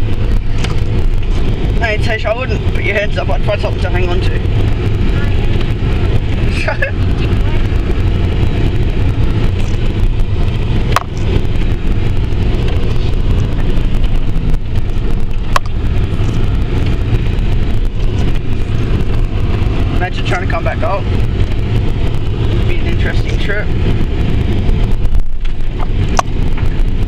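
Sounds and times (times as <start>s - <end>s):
engine and drivetrain drone: 0.0s - 27.0s
road noise: 0.0s - 27.0s.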